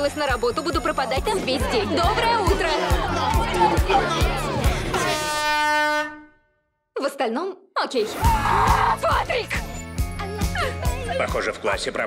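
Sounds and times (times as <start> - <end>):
air horn blast: 4.8 - 6.6.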